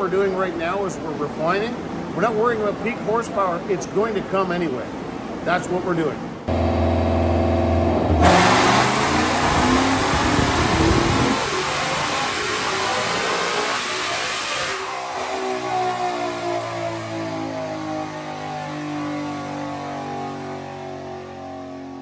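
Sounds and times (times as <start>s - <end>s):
car engine revving on dyno: 6.5s - 22.0s.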